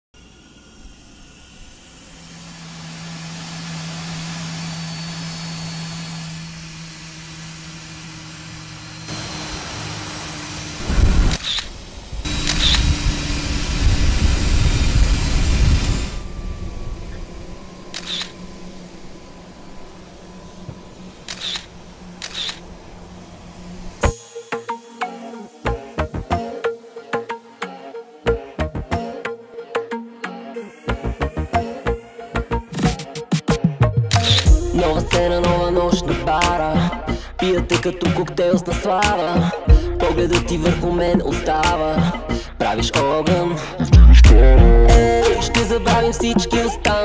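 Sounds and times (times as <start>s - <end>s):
loud rushing noise: 2.6s - 24.6s
sharp clicks: 11.3s - 11.7s, 12.3s - 12.9s, 17.9s - 18.4s, 21.2s - 22.6s, 34.1s - 35.6s.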